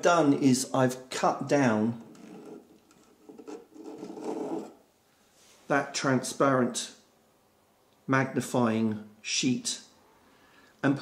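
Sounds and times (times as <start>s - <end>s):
plastic sheet scraping: 1.9s - 4.8s.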